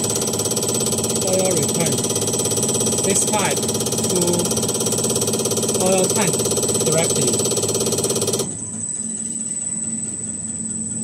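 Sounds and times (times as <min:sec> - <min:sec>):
injector test bench buzzing: 0:00.0 - 0:11.0.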